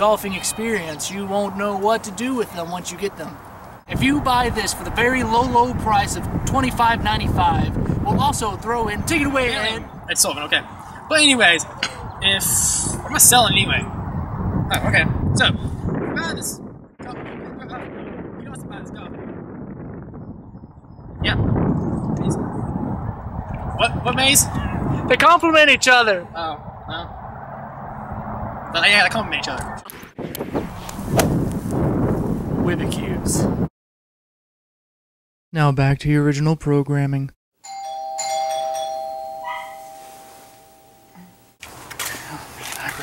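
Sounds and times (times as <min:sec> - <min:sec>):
wind buffeting microphone: 0:00.0 - 0:33.7
ding-dong doorbell chime: 0:37.6 - 0:41.4.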